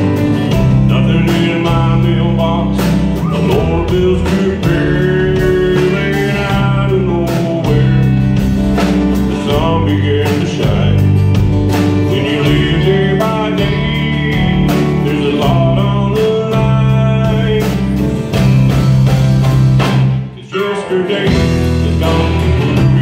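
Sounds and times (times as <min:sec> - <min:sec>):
man singing: 0:00.0 - 0:18.4, 0:20.2 - 0:23.0
live band playing: 0:00.0 - 0:23.0.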